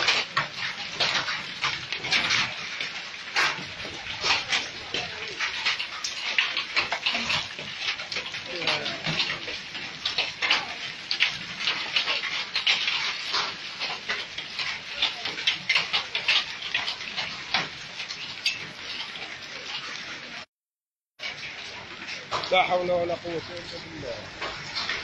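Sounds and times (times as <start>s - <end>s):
hail and rain on pavement and cars: 0.0s - 20.5s, 21.2s - 25.0s.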